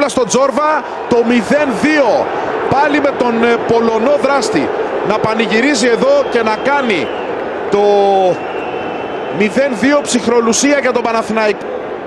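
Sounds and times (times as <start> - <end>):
man commentating: 0.0 - 7.1, 7.7 - 8.4, 9.3 - 11.6
stadium crowd noise: 0.0 - 12.0.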